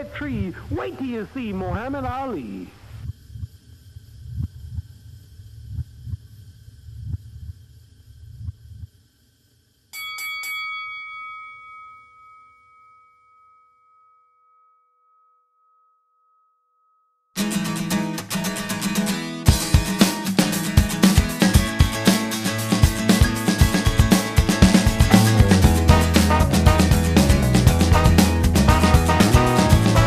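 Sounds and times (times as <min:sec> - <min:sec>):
boxing ring bell ringing: 0:09.9 - 0:17.2
rock band with electric guitars: 0:17.4 - 0:30.0.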